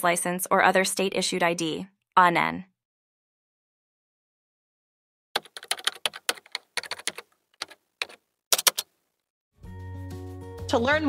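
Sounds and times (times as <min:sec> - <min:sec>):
keyboard key clicks: 0:05.4 - 0:08.9
background music: 0:09.6 - 0:11.0.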